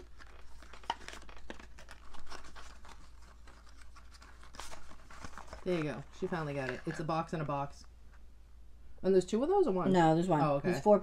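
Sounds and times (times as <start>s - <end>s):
cardboard box rustling and crinkling: 0.0s - 7.1s.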